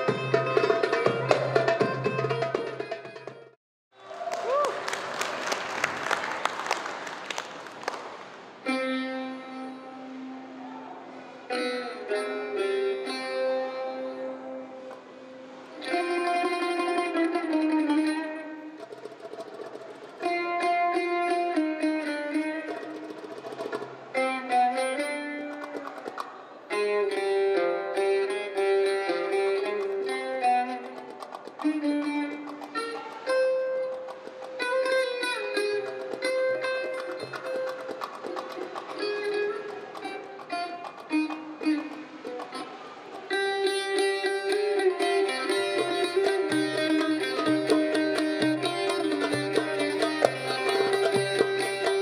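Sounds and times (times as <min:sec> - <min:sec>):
oud plucked notes: 0:00.0 - 0:03.6, 0:11.4 - 0:52.0.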